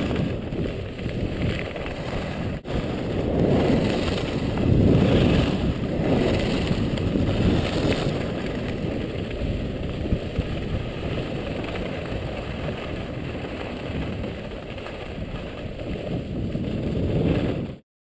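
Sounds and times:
wind rumbling on microphone: 0.0s - 17.8s.

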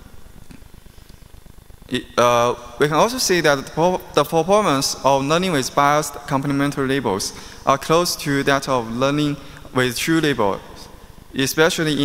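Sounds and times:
man speaking: 1.9s - 12.0s.

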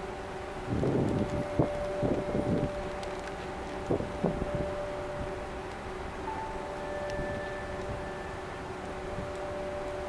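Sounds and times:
faint steady two-tone hum: 0.0s - 10.0s
wind rumbling on microphone: 0.0s - 10.0s.

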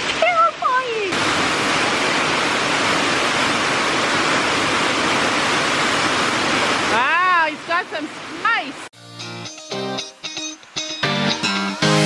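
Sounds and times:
heavy rain on a roof: 0.0s - 7.4s.

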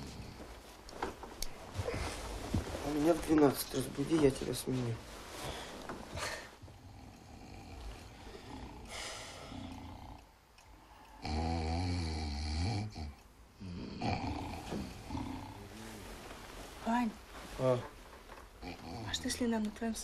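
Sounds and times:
men snoring: 6.2s - 10.3s, 11.2s - 16.0s, 18.6s - 19.4s.

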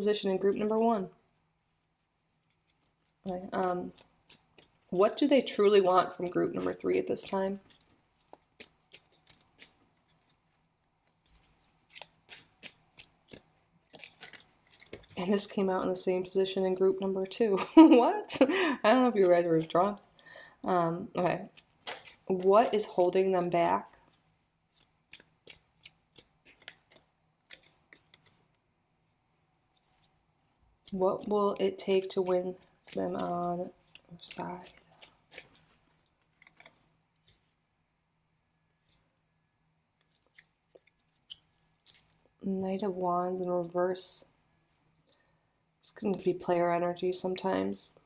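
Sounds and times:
cards being shuffled: 1.9s - 17.6s, 21.3s - 28.6s, 29.6s - 37.6s, 40.0s - 42.3s.

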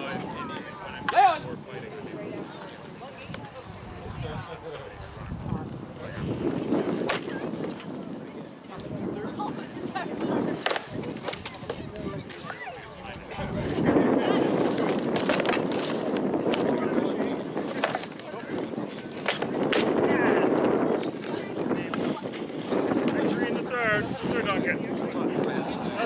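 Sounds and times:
voices: 0.0s - 26.0s.

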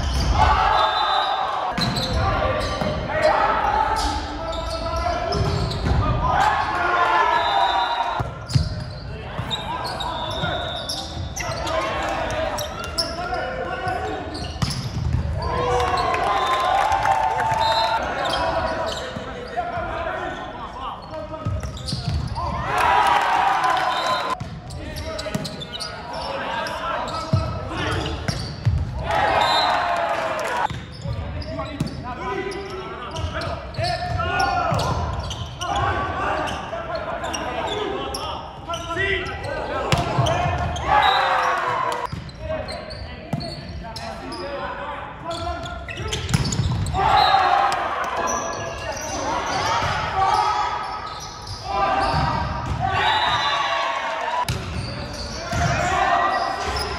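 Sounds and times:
players calling and shouting: 0.0s - 56.9s.

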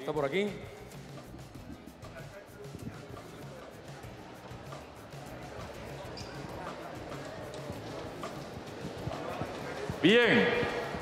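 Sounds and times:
faint indistinct voices: 0.0s - 11.0s
soft music: 0.0s - 11.0s.

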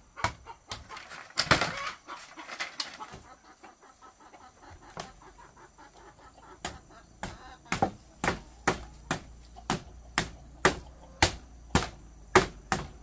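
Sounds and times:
wood knocking on bamboo: 6.6s - 12.9s.

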